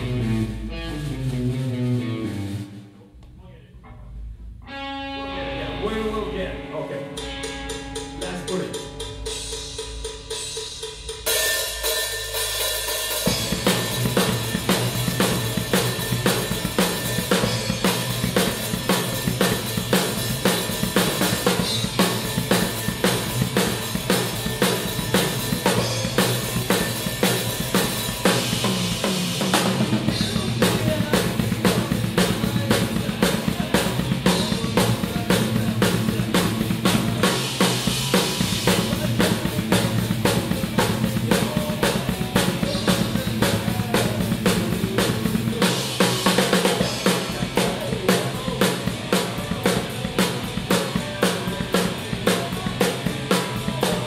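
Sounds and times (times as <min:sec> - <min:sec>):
electric guitar playing: 0:00.0 - 0:03.0, 0:04.2 - 0:10.3, 0:13.2 - 0:47.5
cymbals crashing: 0:07.0 - 0:30.0.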